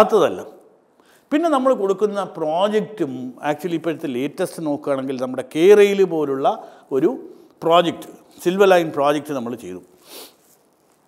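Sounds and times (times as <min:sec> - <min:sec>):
man speaking: 0:01.3 - 0:09.9
short soft hiss: 0:09.9 - 0:11.0.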